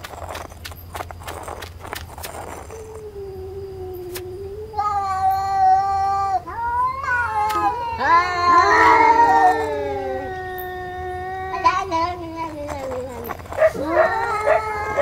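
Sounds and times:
cartoon cats yowling: 2.6s - 15.0s.

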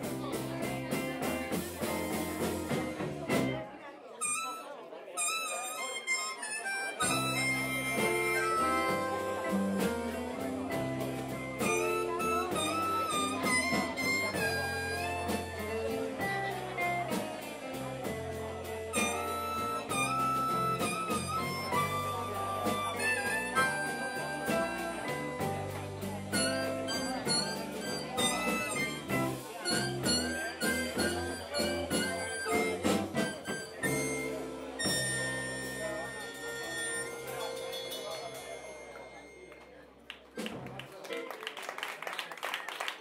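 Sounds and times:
blues band playing: 0.0s - 40.9s
harmonica playing lead: 4.2s - 39.8s.

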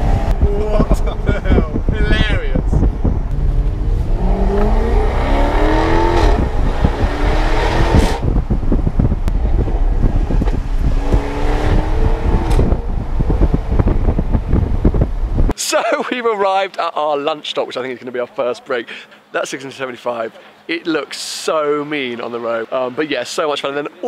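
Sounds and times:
car engine accelerating: 0.0s - 15.5s.

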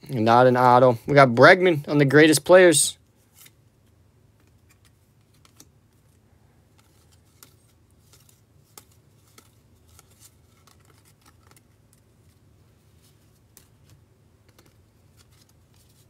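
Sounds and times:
low steady hum: 0.0s - 16.0s
trading cards flipped by hand: 3.2s - 12.4s, 13.0s - 16.0s.

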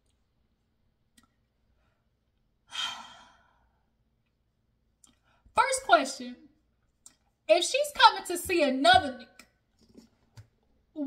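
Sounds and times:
woman sighing: 2.7s - 3.6s.

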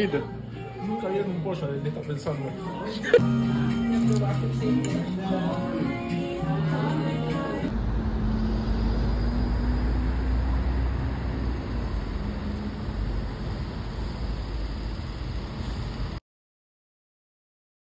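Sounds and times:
deep rumble of street traffic: 7.7s - 16.2s.

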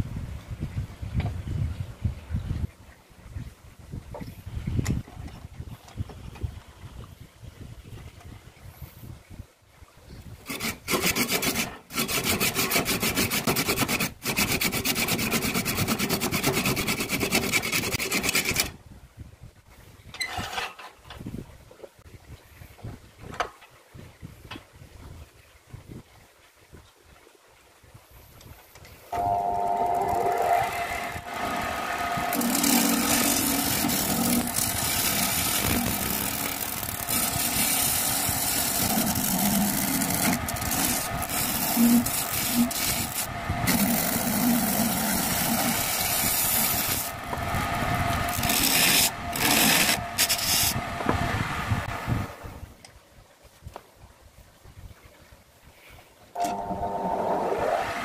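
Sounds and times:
blade scraping bamboo: 10.5s - 18.8s, 29.2s - 51.2s.

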